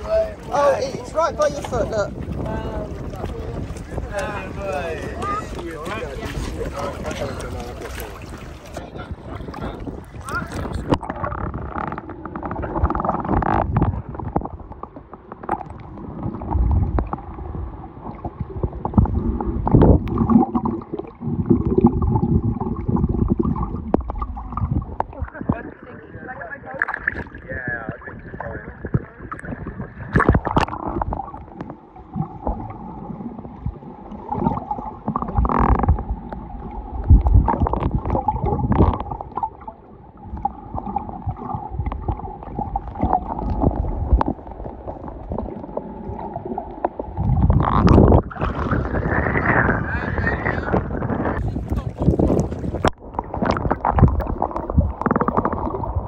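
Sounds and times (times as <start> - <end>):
muffled underwater wash: 0.0 - 56.0
water splashing: 0.0 - 56.0
wind: 0.0 - 56.0.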